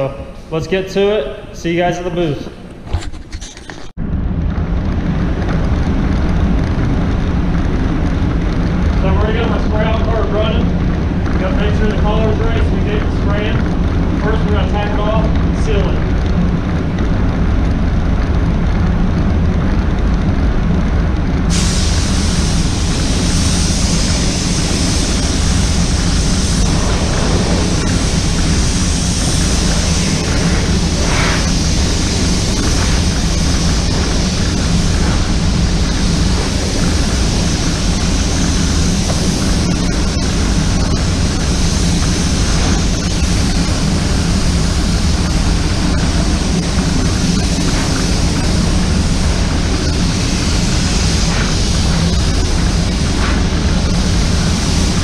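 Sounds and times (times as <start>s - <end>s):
paint booth air rushing: 0.0s - 55.0s
spray gun hiss: 21.5s - 55.0s.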